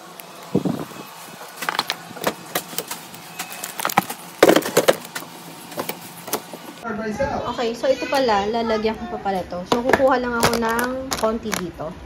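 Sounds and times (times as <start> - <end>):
plastic wrappers crinkling: 1.2 - 6.2.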